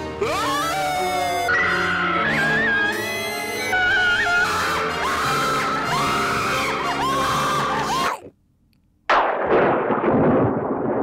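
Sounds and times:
held music: 0.0 - 8.2
women screaming: 0.2 - 8.2.

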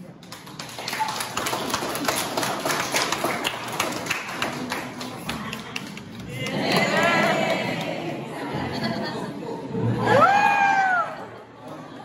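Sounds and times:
crowd applauding: 0.0 - 8.2.

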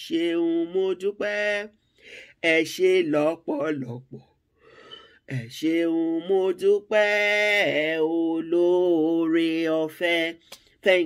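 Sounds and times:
breath: 1.8 - 2.4, 4.5 - 5.2.

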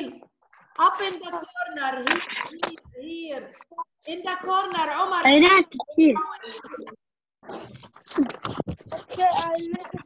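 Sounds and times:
microphone noise bursts and clicks: 7.4 - 10.0.

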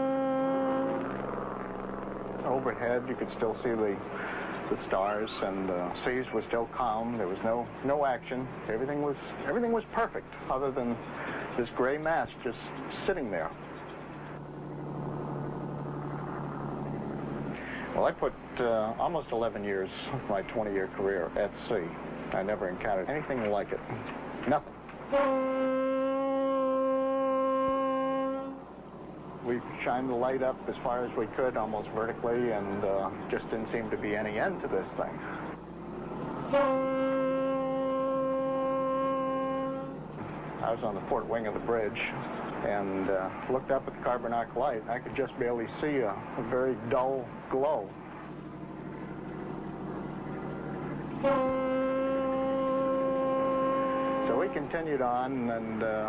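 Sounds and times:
ship's horn blast: 0.0 - 6.4, 23.3 - 29.8, 35.4 - 41.4, 48.5 - 55.8
low droning hum: 0.0 - 56.0.

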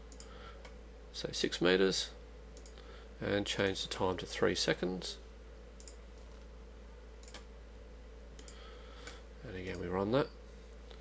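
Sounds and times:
low electrical hum: 0.0 - 11.0
computer mouse clicks: 0.1 - 0.8, 2.6 - 2.8, 5.8 - 6.4, 7.2 - 7.5, 8.4 - 9.9.

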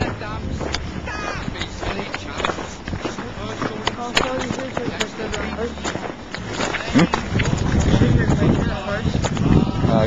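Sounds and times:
footsteps scuffing: 0.0 - 9.8
indistinct voices: 0.0 - 10.0.

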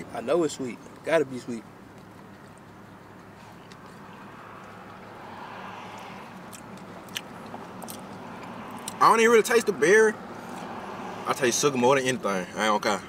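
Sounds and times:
person chewing: 6.4 - 9.0.

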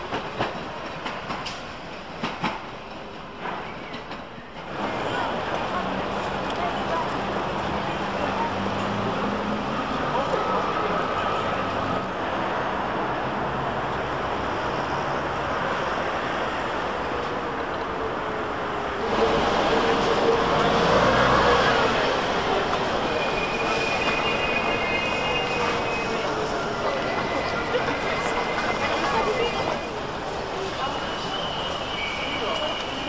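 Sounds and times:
traffic: 0.0 - 33.0
passers-by talking: 4.7 - 12.1, 19.0 - 33.0.

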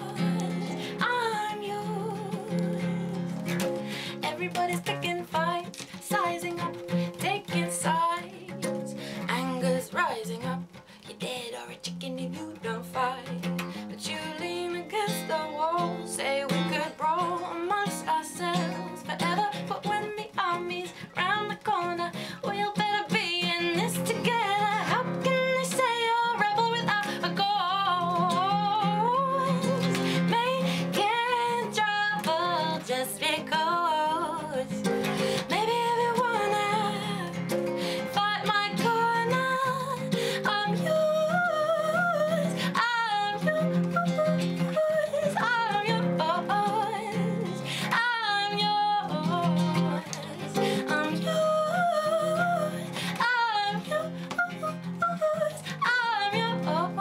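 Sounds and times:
strummed acoustic guitar: 0.0 - 57.0
woman singing: 0.0 - 57.0.

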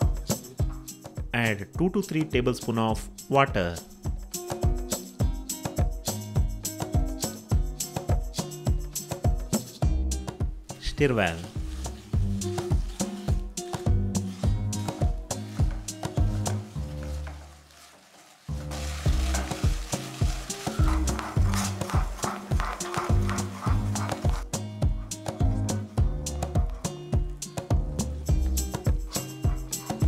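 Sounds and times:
background music with a beat: 0.0 - 17.4, 18.5 - 30.0
hot syrup sizzling: 10.7 - 24.3.

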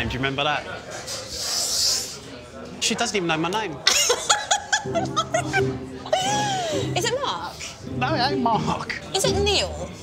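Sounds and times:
woman laughing: 3.9 - 7.2
background music: 3.9 - 10.0.

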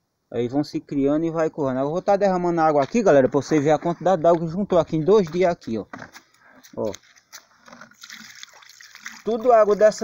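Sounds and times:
water pouring and splashing: 6.8 - 10.0.

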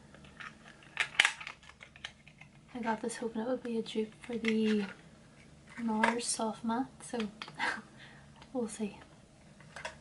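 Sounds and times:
plastic packaging clicks: 0.1 - 2.7.

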